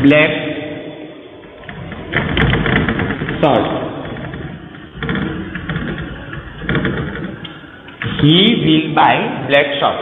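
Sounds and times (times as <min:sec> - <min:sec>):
steady low hum: 0:00.7 - 0:09.5.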